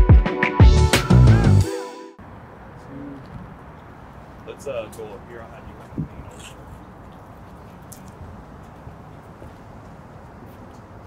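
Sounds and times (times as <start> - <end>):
quiet city street ambience: 2.2 - 11.0.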